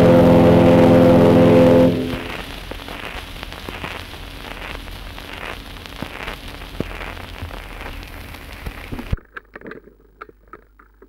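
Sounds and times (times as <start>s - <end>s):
low mains hum: 0.0s - 9.3s
record surface hiss and crackle: 0.0s - 11.0s
faint clicks: 3.0s - 11.0s.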